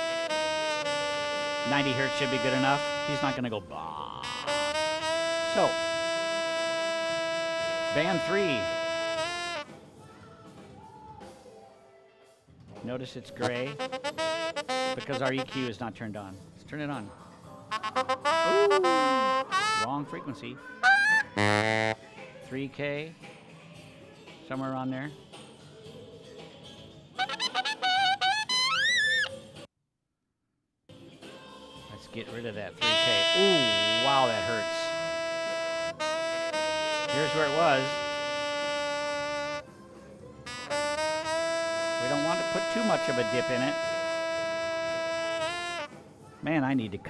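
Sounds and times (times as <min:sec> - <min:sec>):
saxophone holding long note: 0:00.0 - 0:09.7, 0:13.5 - 0:15.7, 0:17.7 - 0:19.9, 0:21.4 - 0:22.0, 0:32.8 - 0:39.6, 0:40.5 - 0:45.9.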